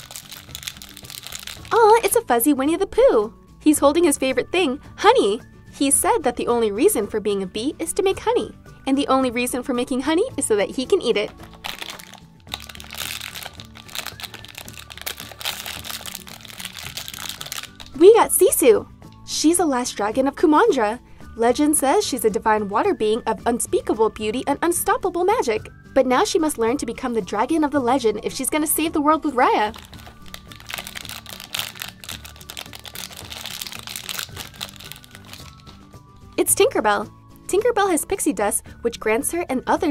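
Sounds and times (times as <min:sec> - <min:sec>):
foil wrapper tearing and crumpling: 0:00.0 - 0:02.1, 0:11.3 - 0:18.0, 0:29.7 - 0:35.8
plastic pouch crinkling: 0:00.0 - 0:02.1, 0:11.2 - 0:18.0, 0:29.7 - 0:35.8
background music: 0:00.0 - 0:39.9.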